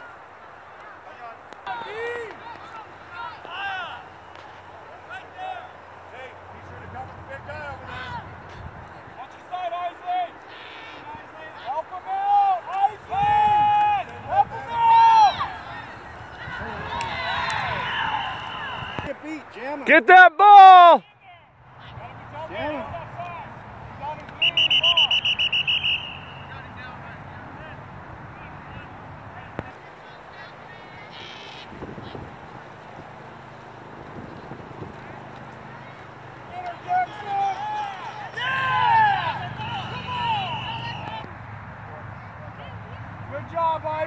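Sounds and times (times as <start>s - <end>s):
distant shouting: 0.0s - 44.0s
referee's whistle short blasts: 24.4s - 26.6s.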